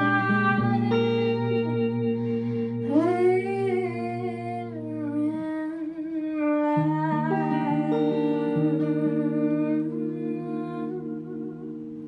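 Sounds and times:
electric guitar chords: 0.0s - 12.0s.

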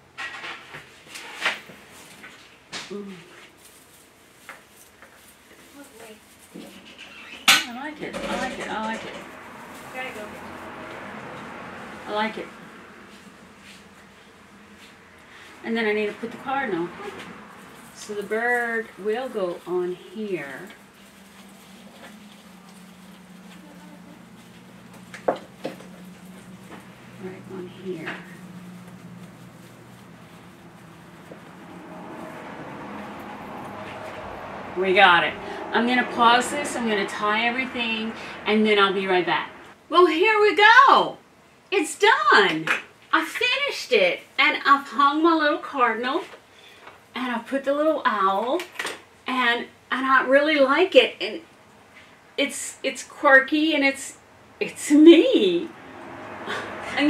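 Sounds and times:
wreath branches rustling: 3.3s - 15.5s, 16.4s - 39.8s
steady low hum: 17.6s - 39.8s.

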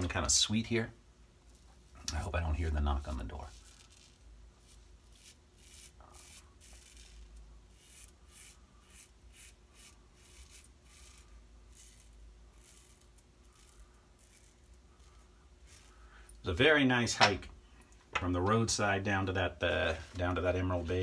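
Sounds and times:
razor scraping stubble: 1.4s - 16.4s.

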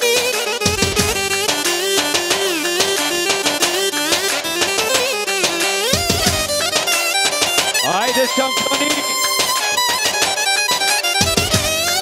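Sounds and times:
dance music with drum beat: 0.0s - 12.0s.

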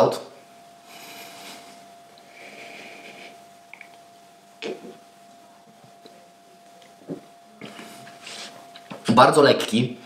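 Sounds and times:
faint high hum: 0.0s - 10.0s
soft nose breaths: 0.8s - 3.9s, 7.6s - 8.7s.

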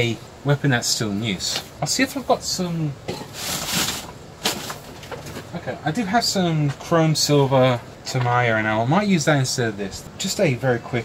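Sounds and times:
rustling in cardboard box: 3.3s - 5.0s.

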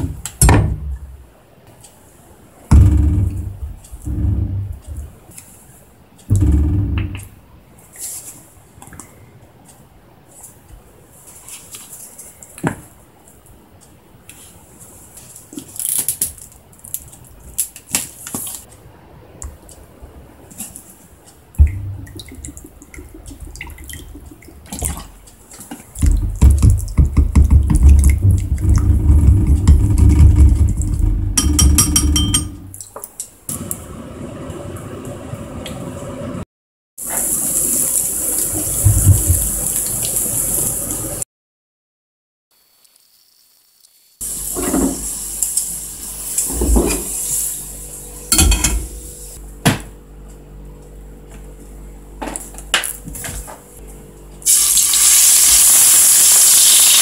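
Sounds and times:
food sizzling in oil: 37.0s - 41.2s, 42.6s - 47.6s, 54.4s - 57.0s.

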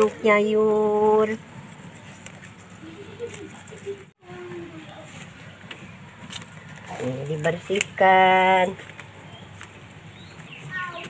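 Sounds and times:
faint distant voices: 2.0s - 11.0s.

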